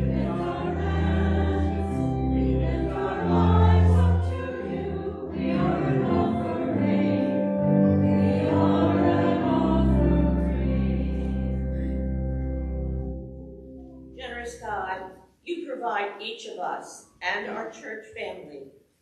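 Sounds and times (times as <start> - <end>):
church choir singing: 0.0 - 13.7
sustained organ chords: 0.0 - 14.8.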